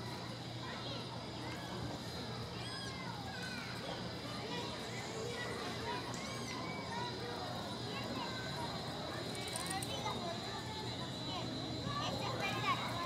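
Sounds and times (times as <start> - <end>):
faint indistinct voices: 0.0 - 13.0.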